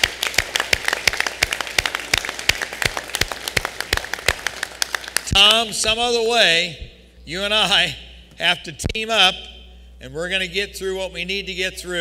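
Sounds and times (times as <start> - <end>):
applause from crowd: 0.0 - 5.4.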